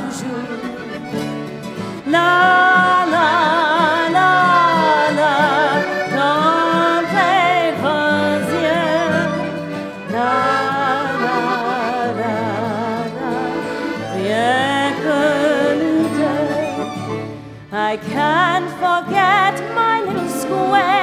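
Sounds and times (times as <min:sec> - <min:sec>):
woman singing with vibrato: 0:00.0 - 0:01.1, 0:02.0 - 0:21.0
accordion: 0:00.0 - 0:21.0
violin: 0:00.0 - 0:21.0.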